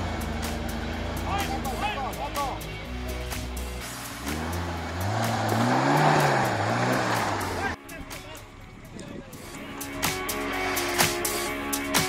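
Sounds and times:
off-road engine revving: 0.0s - 11.4s.

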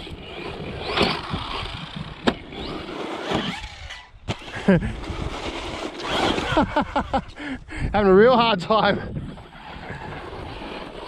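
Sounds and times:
man laughing: 4.5s - 5.1s, 6.3s - 8.0s.

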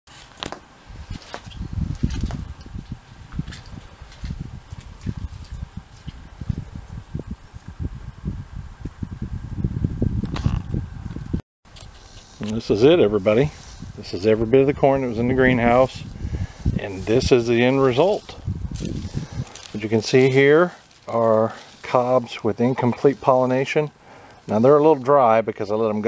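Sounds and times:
light rustling: 16.7s - 23.4s.

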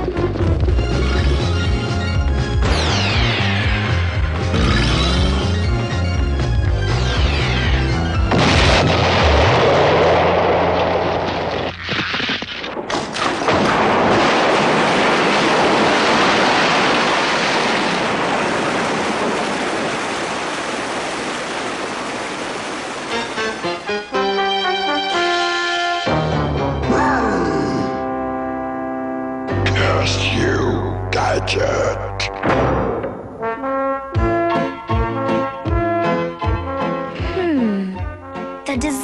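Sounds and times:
music: 0.0s - 8.9s, 23.1s - 39.0s
cartoon explosion blasts: 2.6s - 5.6s, 7.4s - 22.6s
rushing bursting water: 12.9s - 24.8s.

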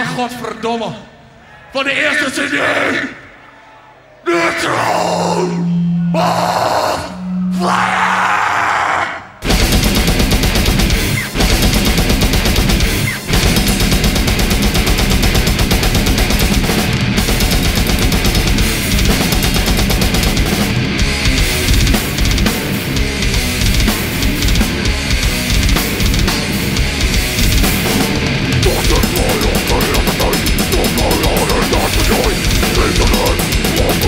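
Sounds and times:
distorted held guitar notes: 5.2s - 8.4s, 9.4s - 34.0s
heavy metal band playing: 9.4s - 34.0s.

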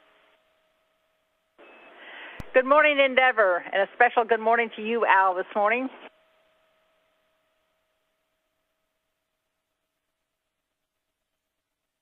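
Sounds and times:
faint steady hum: 0.0s - 12.0s
short high beep: 1.6s - 2.0s.

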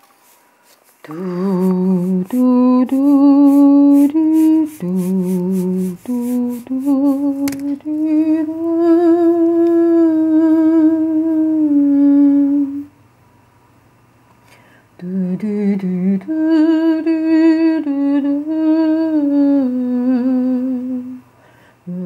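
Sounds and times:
woman humming a slow tune: 1.1s - 13.0s, 15.0s - 21.3s.

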